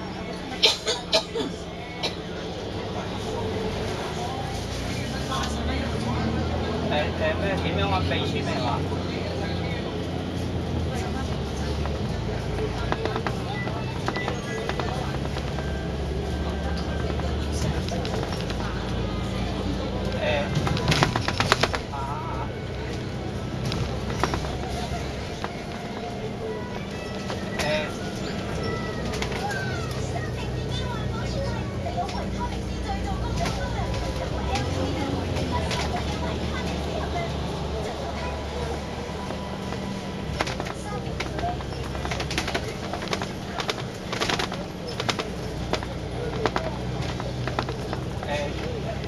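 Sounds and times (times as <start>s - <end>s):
bus engine and road rumble: 0.0s - 49.0s
bodywork clicks and rattles: 11.0s - 49.0s.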